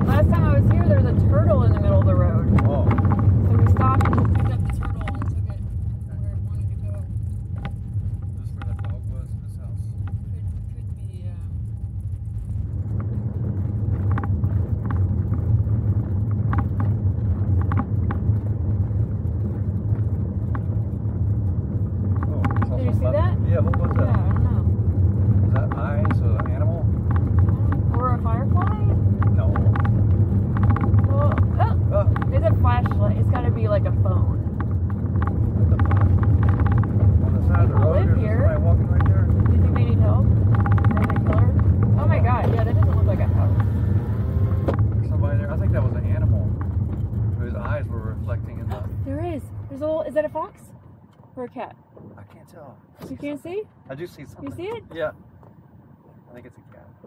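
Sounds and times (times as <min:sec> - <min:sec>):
car engine and road drone: 0:00.0 - 0:57.0
indistinct voices: 0:22.1 - 0:46.5.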